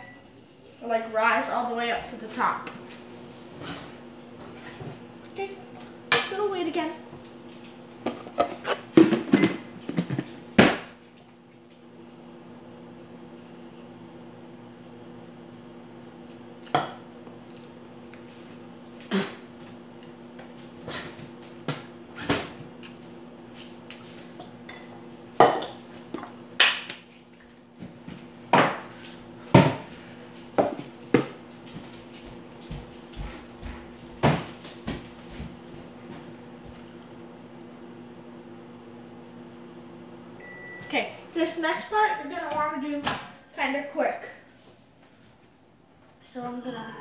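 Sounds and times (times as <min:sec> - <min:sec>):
microwave oven humming: 0:00.0 - 0:47.0.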